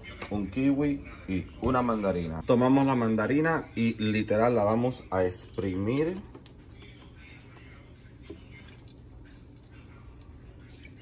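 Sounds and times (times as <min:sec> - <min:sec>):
juice dripping into jar: 0:05.3 - 0:11.0.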